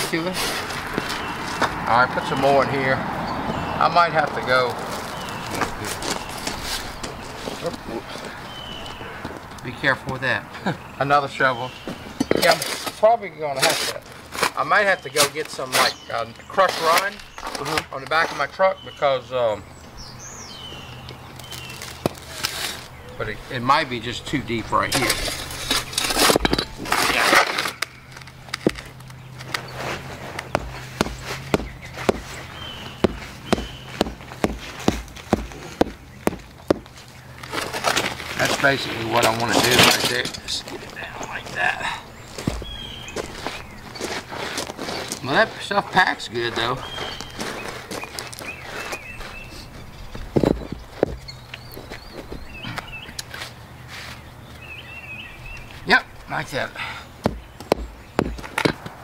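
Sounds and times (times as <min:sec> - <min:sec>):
birds chirping: 0:00.0 - 0:59.0
shovel scraping in wheelbarrow: 0:12.4 - 0:17.7, 0:22.2 - 0:22.9, 0:24.9 - 0:28.1, 0:29.5 - 0:32.5, 0:37.4 - 0:40.5
concrete blocks knocking: 0:25.1 - 0:27.8, 0:57.2 - 0:59.0.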